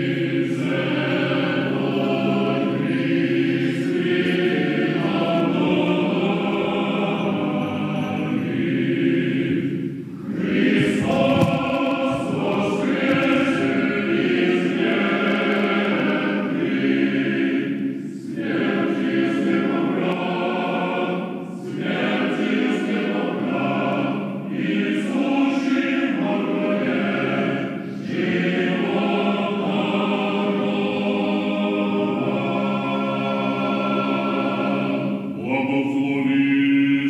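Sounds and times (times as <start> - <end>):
choir singing a chant: 0.0 - 37.0.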